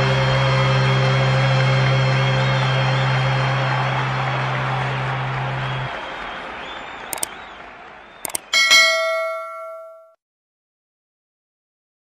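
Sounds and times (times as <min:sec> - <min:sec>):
mouse double click: 0:07.1 - 0:07.3, 0:08.2 - 0:08.5
bright bell ding: 0:08.6 - 0:10.2.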